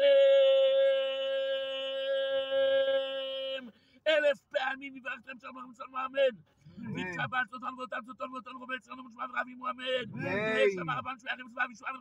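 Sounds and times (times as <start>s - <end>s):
man singing a long note: 0.0s - 3.6s.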